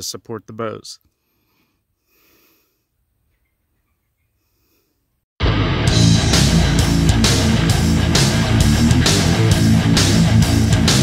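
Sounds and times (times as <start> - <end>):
heavy rock music with guitar: 5.4 - 11.0.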